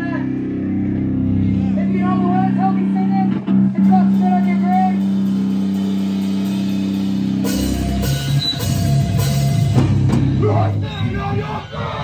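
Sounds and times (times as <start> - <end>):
electric guitars droning: 0.0 - 12.0.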